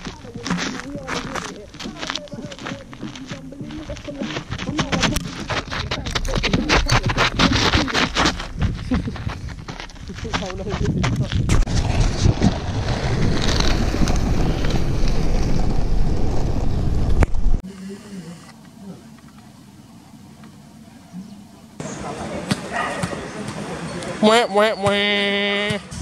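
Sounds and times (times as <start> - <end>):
wind rumble on microphone: 4.4 - 17.6
skateboard wheels rolling: 11.5 - 17.6.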